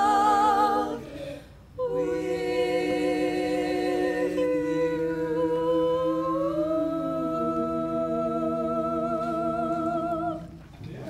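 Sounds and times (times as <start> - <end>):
women singing barbershop harmony: 0.0 - 10.7.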